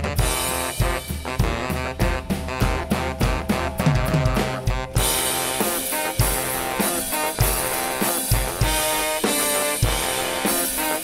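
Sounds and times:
drum kit: 0.0 - 11.0
saxophones holding notes: 0.1 - 11.0.

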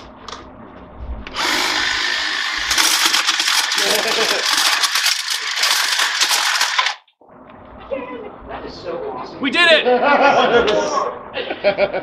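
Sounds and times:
hedge trimmer cutting wood: 1.3 - 7.1.

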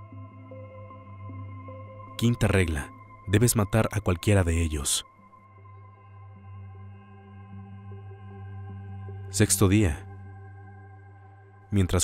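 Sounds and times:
ambient drone music: 0.0 - 12.0.

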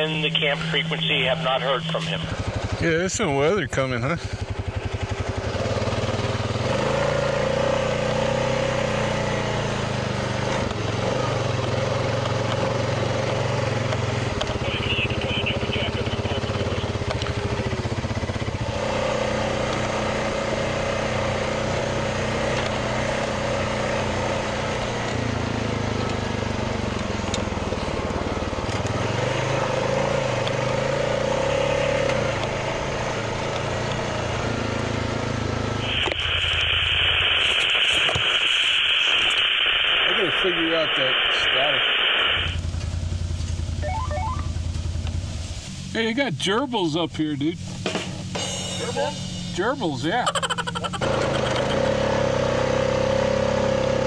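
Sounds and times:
radio static hiss: 0.0 - 3.8, 13.0 - 17.6, 35.8 - 42.7, 45.6 - 47.8, 48.8 - 52.1
atv engine running: 0.0 - 38.2, 42.5 - 54.0.

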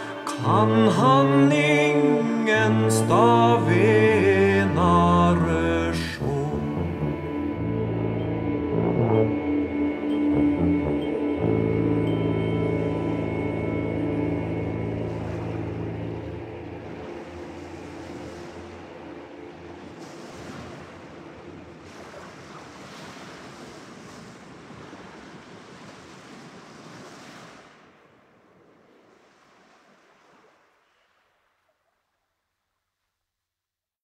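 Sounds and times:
music chord: 0.0 - 21.6
sea surf washing: 0.0 - 31.4.

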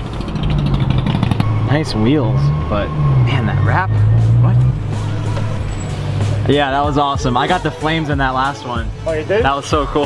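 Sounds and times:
car engine running at low revs: 0.0 - 9.0.

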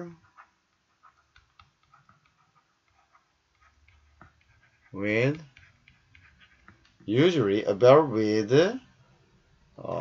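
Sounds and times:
stylus tapping on pen tablet: 1.1 - 4.8, 5.4 - 7.1.

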